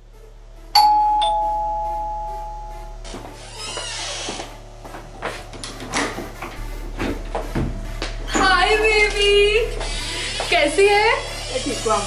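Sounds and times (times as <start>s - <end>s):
ding-dong doorbell chime: 0.8s - 2.7s.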